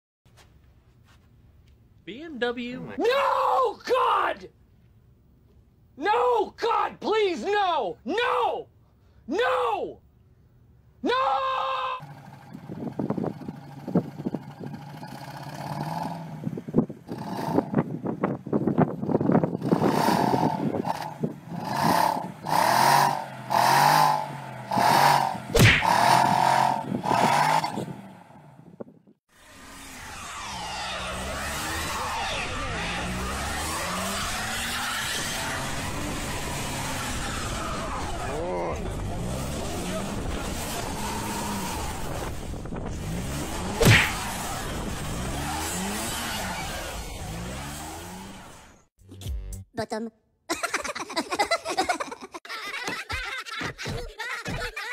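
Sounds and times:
car engines revving: 12.0 - 28.6, 29.4 - 48.9
tyres spinning in snow: 29.4 - 48.8.

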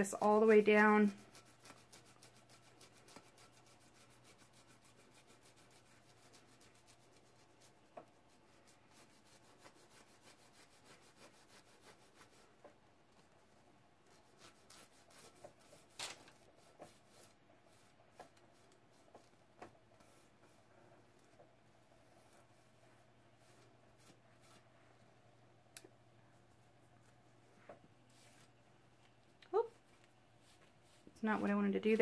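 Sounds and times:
cloth rubbing on glass: 0.0 - 13.3.

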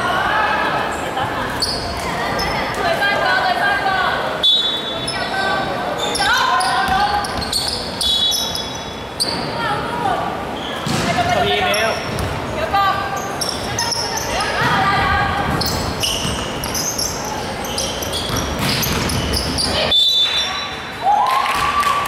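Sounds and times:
basketball bouncing on hardwood: 18.2 - 19.6.

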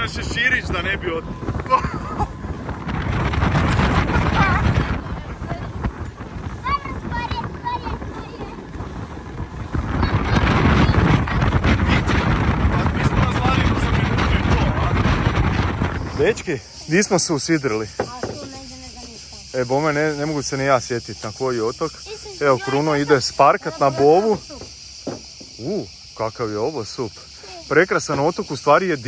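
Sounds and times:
boat rushing across water: 0.0 - 29.0
wind buffeting microphone: 0.0 - 29.0.

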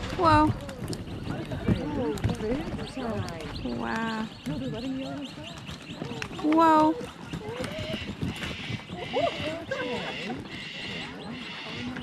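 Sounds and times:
kangaroos hopping on dirt: 0.0 - 12.0
people's voices: 0.0 - 12.0.

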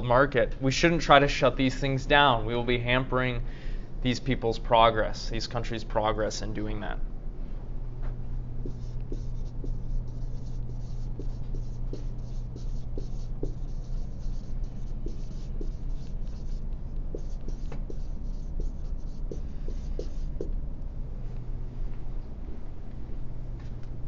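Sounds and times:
steady low hum: 0.0 - 24.0
scratchy writing on a board: 8.6 - 20.5.

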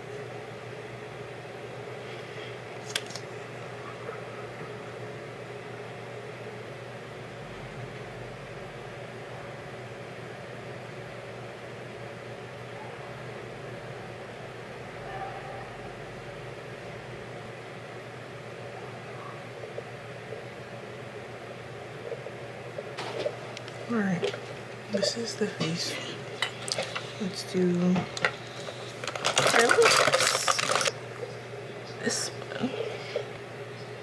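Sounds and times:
machine hum and hiss: 0.0 - 34.0.

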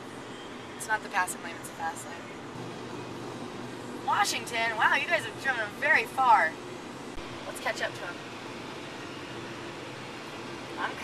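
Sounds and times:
car cabin noise at highway speed: 0.0 - 11.0.

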